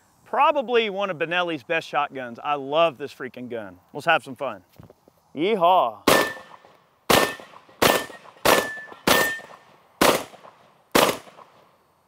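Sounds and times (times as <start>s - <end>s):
steel target ringing: 6.1s - 6.6s, 7.2s - 9.6s
shotgun shots: 6.1s - 11.7s.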